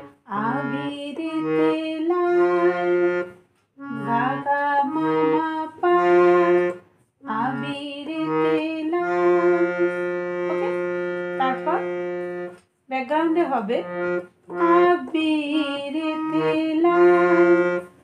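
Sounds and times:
harmonium melody: 0.0s - 18.0s.

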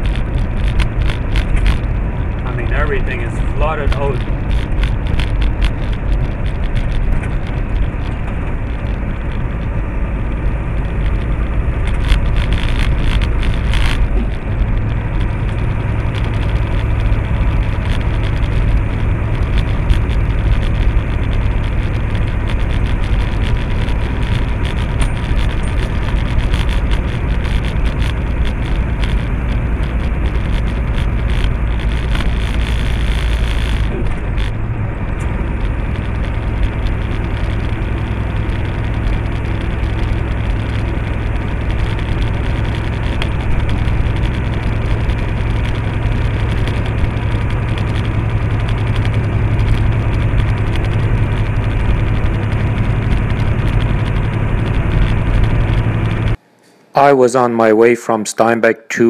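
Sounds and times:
tyre and road noise: 0.0s - 57.7s
truck engine drone: 0.0s - 57.8s.

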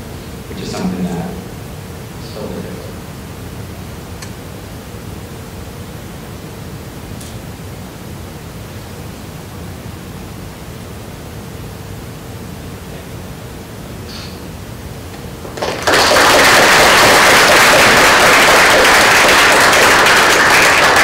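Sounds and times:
faint steady hum: 0.0s - 21.0s
room tone hiss: 0.0s - 21.0s.

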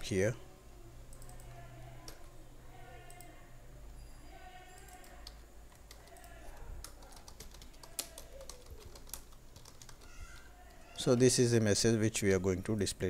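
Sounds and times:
keyboard typing: 1.1s - 2.2s, 4.5s - 11.2s.

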